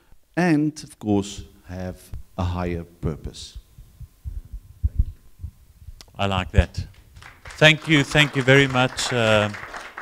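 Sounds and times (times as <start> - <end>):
microphone handling thumps: 3.5 - 7.2.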